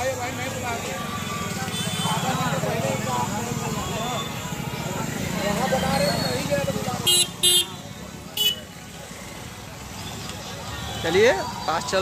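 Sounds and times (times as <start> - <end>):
motorcycles moving slowly: 0.0 - 12.0
vehicle horn toot: 7.1 - 7.8.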